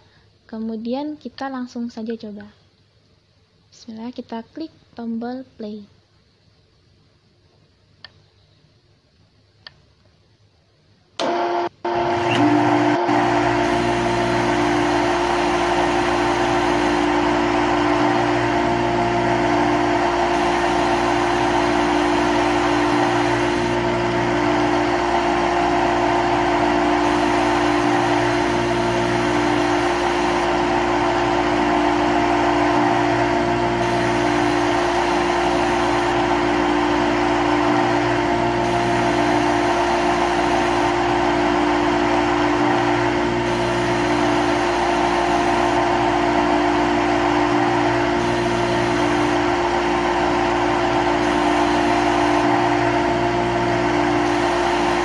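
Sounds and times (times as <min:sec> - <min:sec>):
lathe machine hum: 0:11.2 - 0:55.0.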